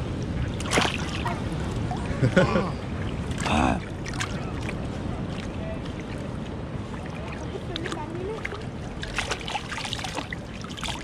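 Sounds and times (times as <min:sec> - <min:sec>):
water lapping and sloshing: 0:00.0 - 0:11.0
small splashes: 0:00.4 - 0:02.2, 0:03.0 - 0:11.0
person laughing: 0:02.1 - 0:02.8.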